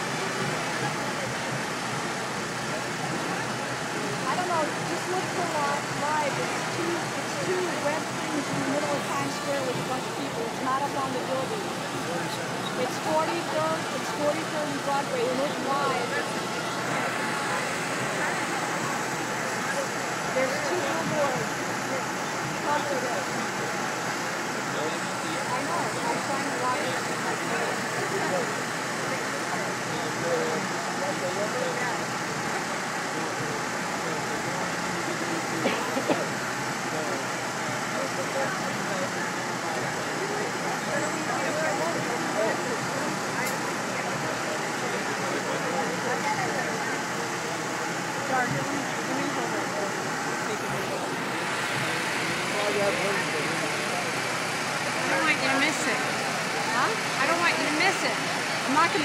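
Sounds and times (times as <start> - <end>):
many people talking: 0.0 - 59.0
steady traffic noise: 0.0 - 59.0.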